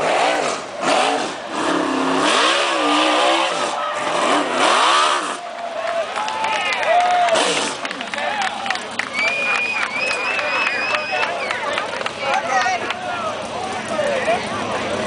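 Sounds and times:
race car engine revving: 0.0 - 5.7, 7.1 - 15.0.

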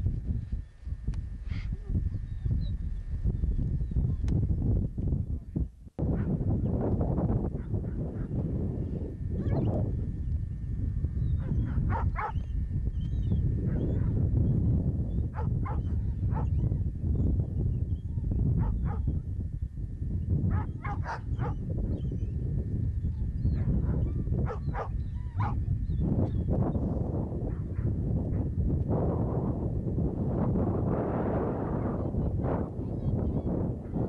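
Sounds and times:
wind rumble on microphone: 0.0 - 34.0
dogs barking: 11.4 - 12.5, 13.7 - 14.2, 15.3 - 16.7, 18.6 - 19.2, 20.5 - 22.2, 23.2 - 25.6.

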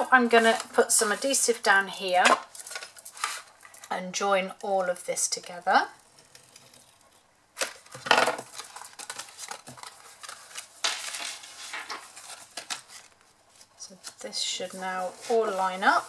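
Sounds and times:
paper rustling and rubbing: 0.0 - 1.7, 2.5 - 3.9, 8.4 - 16.0.

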